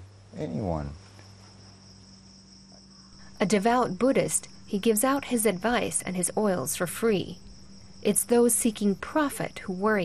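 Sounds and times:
low steady hum: 0.0s - 10.0s
high-pitched insect chirring: 1.8s - 10.0s.

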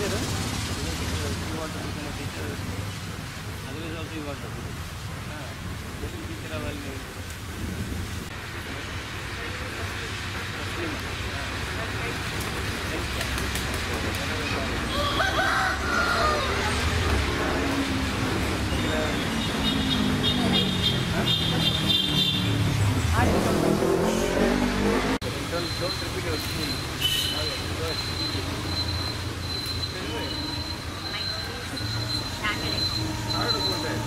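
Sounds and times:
people talking: 0.0s - 3.0s, 3.6s - 7.1s, 8.6s - 22.4s, 23.0s - 34.0s
wind rumbling on microphone: 4.4s - 8.8s
faint voices: 25.4s - 34.0s
rising high tone: 28.3s - 34.0s.

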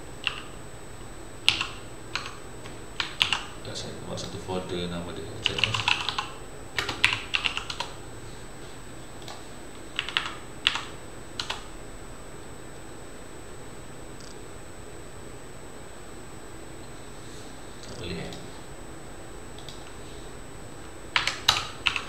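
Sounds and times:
typing on computer keyboard: 0.2s - 0.5s, 1.5s - 2.4s, 3.0s - 3.5s, 5.4s - 7.9s, 10.0s - 11.7s, 21.2s - 22.0s.

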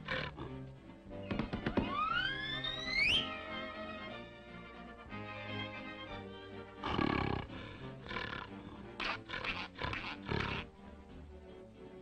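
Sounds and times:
cartoon music: 1.8s - 4.0s.

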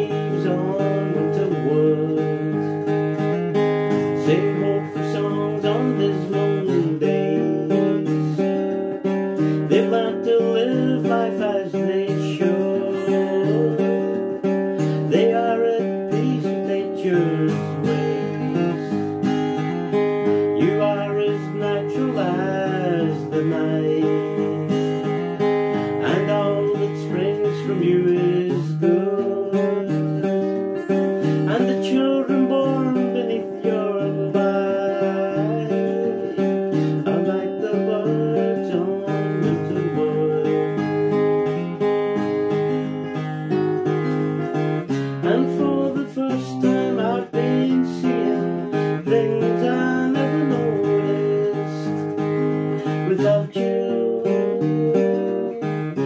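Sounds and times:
acoustic guitar strumming: 0.0s - 56.0s
man singing: 0.0s - 56.0s.

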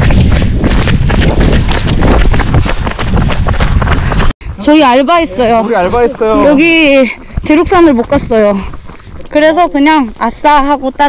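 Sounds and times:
heavy wind buffeting microphone: 0.0s - 10.9s.

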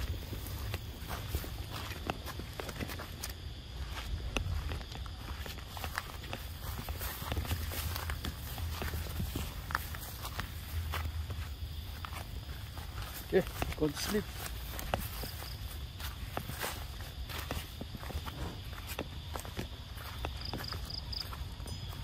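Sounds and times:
footsteps on gravel: 0.0s - 22.0s.

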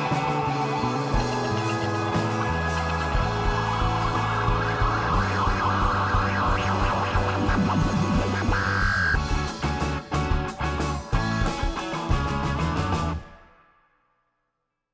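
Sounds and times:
indie rock band playing: 0.0s - 13.6s.

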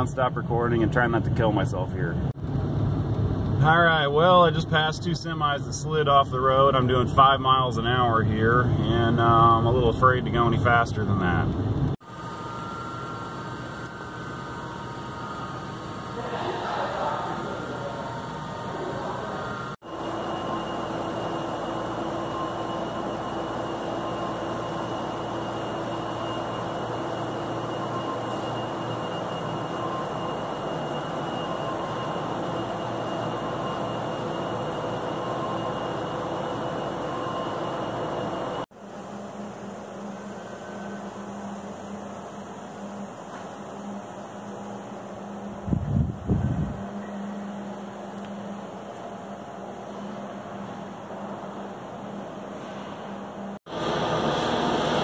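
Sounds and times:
industrial machinery hum: 0.0s - 55.0s.

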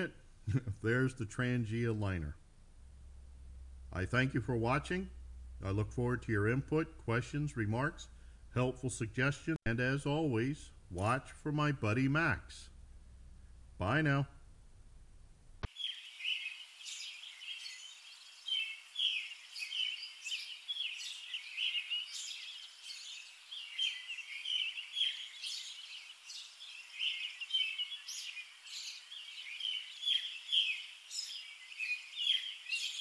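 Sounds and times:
small birds chirping: 15.6s - 33.0s.

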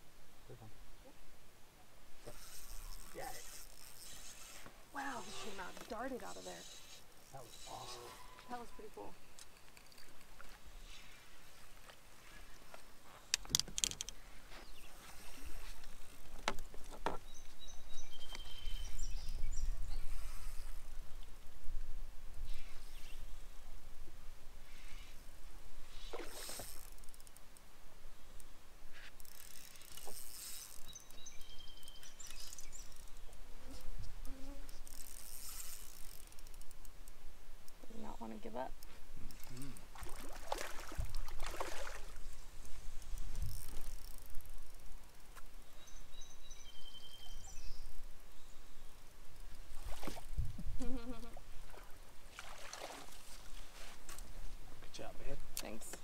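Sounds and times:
fish splashing: 39.8s - 42.3s, 51.4s - 53.4s
wind rumbling on microphone: 49.7s - 51.8s.

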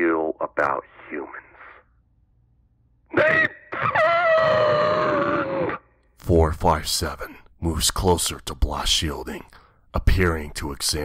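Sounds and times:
high-pitched creature cry: 3.1s - 5.9s.

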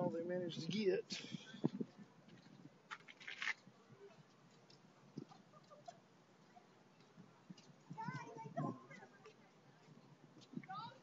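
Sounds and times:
brief rustle: 2.5s - 3.7s.

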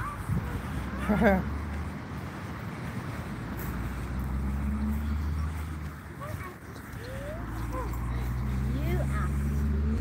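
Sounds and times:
low engine hum: 0.1s - 10.0s.

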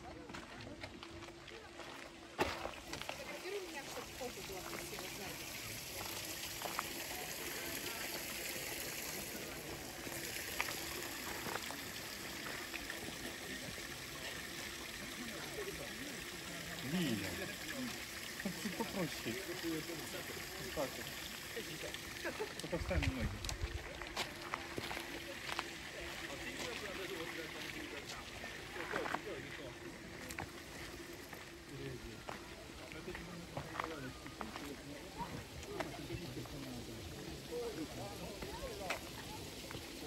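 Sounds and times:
low indistinct voices: 0.0s - 40.0s
stream trickling: 0.0s - 40.0s.

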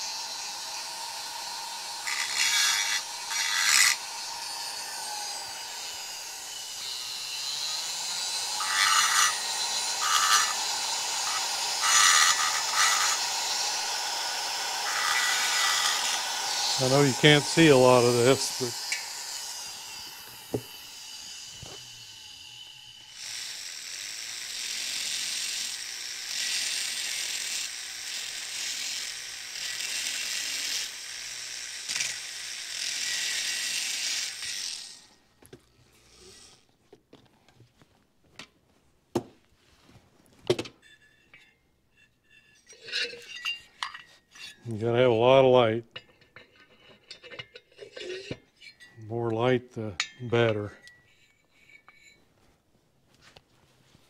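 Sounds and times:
rotary tool grinding metal: 0.0s - 35.2s, 35.9s - 36.8s, 40.8s - 52.2s.

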